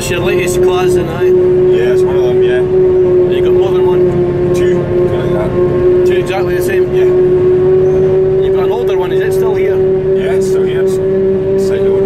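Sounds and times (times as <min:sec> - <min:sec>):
forage harvester whine and rumble: 0:00.0 - 0:12.0.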